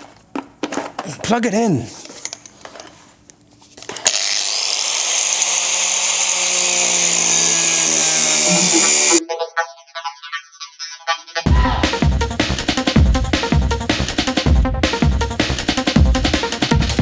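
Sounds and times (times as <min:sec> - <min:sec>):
angle grinder cutting steel: 0:04.0 - 0:09.2
electronic music: 0:08.2 - 0:15.2.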